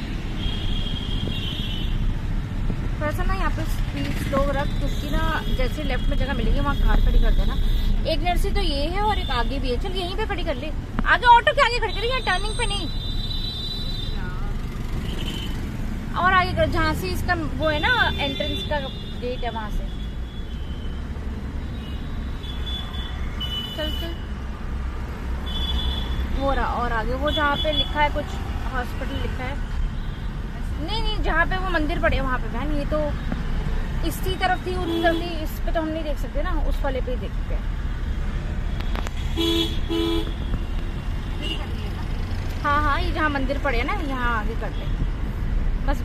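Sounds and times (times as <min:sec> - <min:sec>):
engine and road rumble: 0:00.0 - 0:46.0
road rumble inside moving car: 0:02.1 - 0:11.8
car horn toots: 0:39.4 - 0:40.6.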